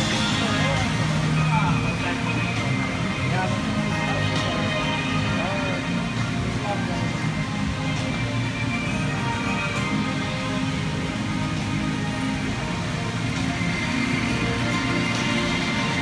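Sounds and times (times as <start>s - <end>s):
flowing water: 0.0s - 16.0s
ride music playing: 0.0s - 16.0s.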